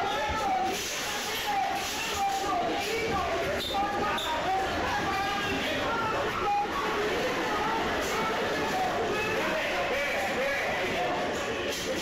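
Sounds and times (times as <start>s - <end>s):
raised voices in echoing hall: 0.0s - 12.0s.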